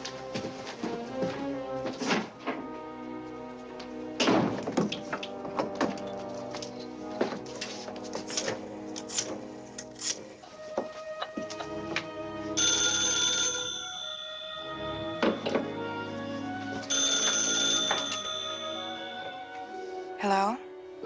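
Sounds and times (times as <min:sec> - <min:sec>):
orchestral film score: 0:00.0 - 0:12.7, 0:13.9 - 0:21.0
telephone bell ringing: 0:12.6 - 0:16.2, 0:16.8 - 0:19.8.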